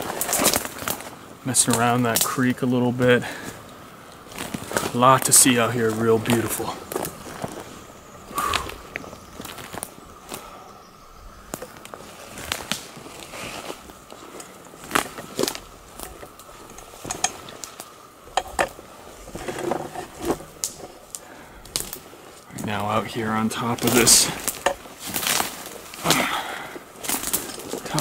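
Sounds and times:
footsteps crunching through undergrowth: 0:00.0 - 0:28.0.

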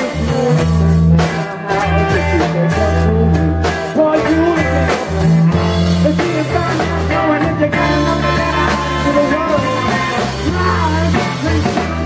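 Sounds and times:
bass guitar: 0:00.0 - 0:12.0
drum kit: 0:00.0 - 0:12.0
electric guitar: 0:00.0 - 0:12.0
person singing: 0:00.0 - 0:12.0.

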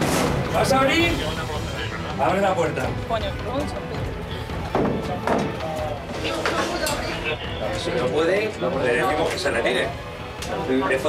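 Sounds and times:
faint background music: 0:00.0 - 0:11.0
people talking: 0:00.5 - 0:11.0.

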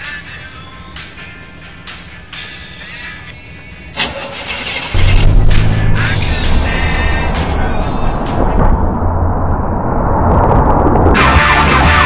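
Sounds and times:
music playing: 0:00.0 - 0:09.0, 0:11.2 - 0:12.0
car engine running: 0:03.6 - 0:09.8.

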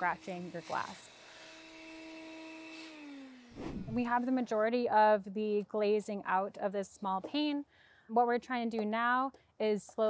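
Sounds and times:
power tool motor winding down: 0:00.0 - 0:04.2.

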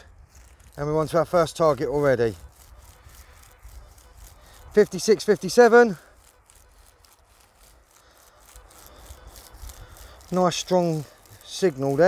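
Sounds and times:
rustling in dry stubble: 0:00.0 - 0:12.0.

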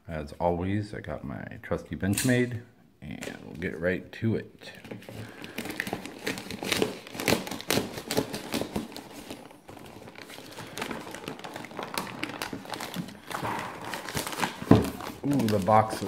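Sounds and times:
plastic mailer crinkling and tearing: 0:04.7 - 0:16.0.

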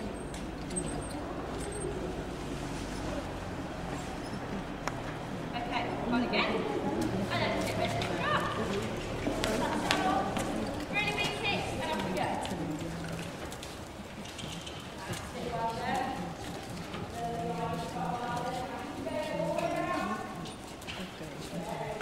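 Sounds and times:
indistinct voices talking and calling: 0:00.0 - 0:22.0
pony hooves walking: 0:00.0 - 0:22.0.

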